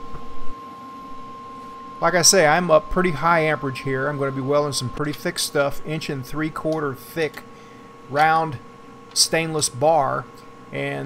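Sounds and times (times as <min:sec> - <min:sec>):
welder electrical whine: 0:00.0 - 0:11.0.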